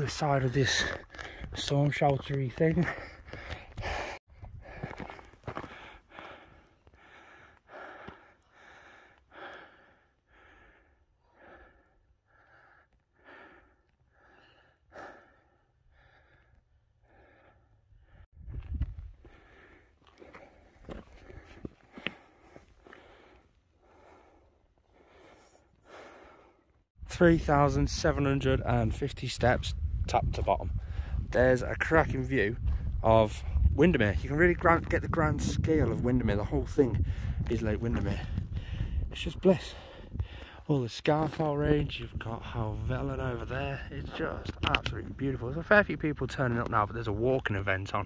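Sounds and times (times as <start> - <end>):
wind buffeting microphone: 0.0 - 6.4, 18.0 - 19.7, 27.0 - 40.6, 41.2 - 47.1
person breathing hard: 2.8 - 18.3, 18.9 - 26.9, 37.0 - 37.4, 38.2 - 39.1, 39.7 - 40.7.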